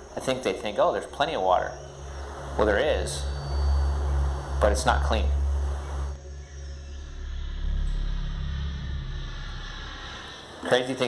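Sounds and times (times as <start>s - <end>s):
low steady rumble: 0.0s - 10.8s
faint hiss: 0.0s - 11.0s.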